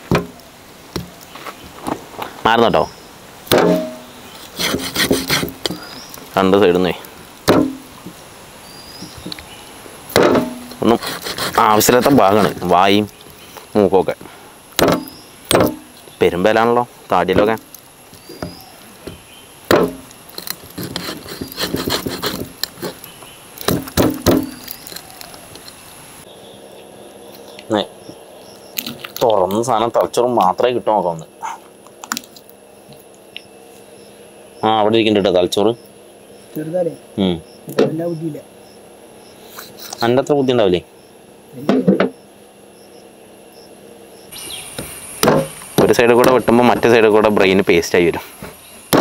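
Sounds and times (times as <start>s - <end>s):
crickets chirring: 0.0s - 49.0s
cleaver chopping bone on wood: 0.1s - 0.4s, 3.5s - 5.9s, 7.4s - 8.2s, 10.1s - 12.7s, 14.8s - 16.0s, 18.2s - 23.0s, 23.6s - 25.4s, 44.8s - 46.9s, 48.4s - 49.0s
sharp knock: 3.5s - 4.2s, 7.5s - 7.8s, 10.2s - 10.8s, 14.8s - 15.9s, 19.7s - 20.0s, 45.2s - 46.5s.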